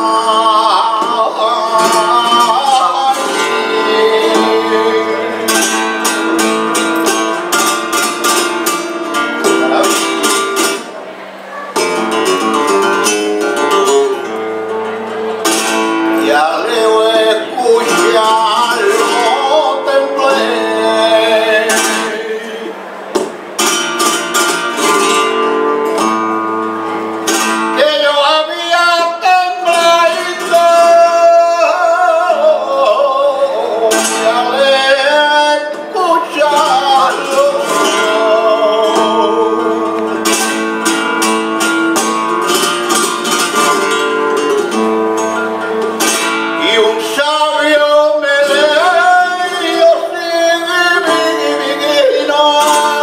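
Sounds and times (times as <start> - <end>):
man singing: 0.0 - 8.8, 9.4 - 10.5, 15.7 - 22.9, 27.6 - 41.0, 46.0 - 53.0
flamenco guitar playing: 0.0 - 53.0.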